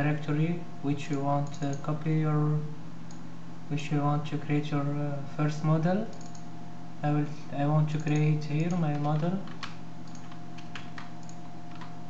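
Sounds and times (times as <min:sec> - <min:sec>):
low electrical hum: 0:00.0 - 0:12.0
keyboard keystrokes: 0:06.1 - 0:06.4, 0:07.9 - 0:12.0.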